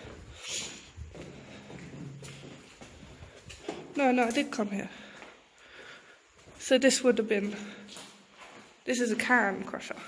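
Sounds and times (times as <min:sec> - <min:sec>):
footsteps on concrete: 0:00.0 - 0:10.0.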